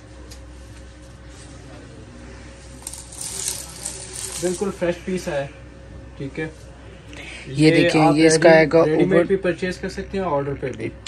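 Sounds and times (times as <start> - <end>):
fabric rustling and clinking: 2.7 - 5.0.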